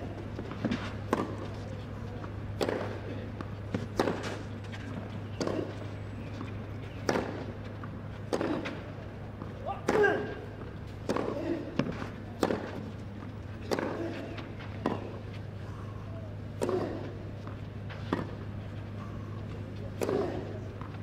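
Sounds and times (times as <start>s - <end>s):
steady low hum: 0.0s - 21.0s
racket hitting tennis ball: 0.4s - 1.5s, 2.6s - 3.1s, 3.7s - 5.8s, 7.0s - 7.5s, 8.3s - 12.9s, 13.6s - 15.2s, 16.6s - 18.5s, 19.9s - 21.0s.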